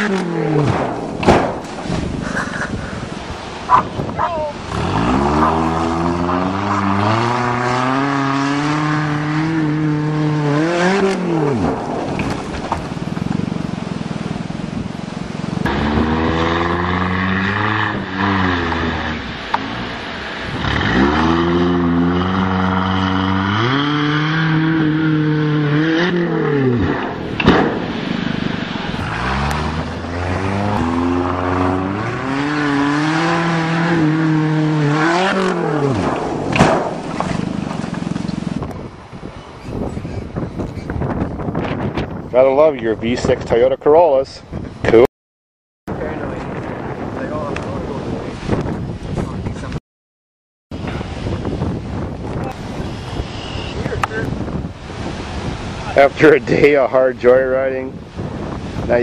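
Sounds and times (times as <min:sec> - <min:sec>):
car engine revving: 0:04.7 - 0:14.6, 0:15.4 - 0:38.6.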